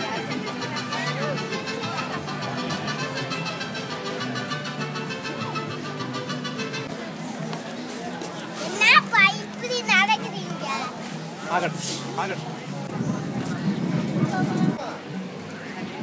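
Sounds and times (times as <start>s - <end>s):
crowd murmur: 0.0s - 16.0s
music playing: 0.0s - 16.0s.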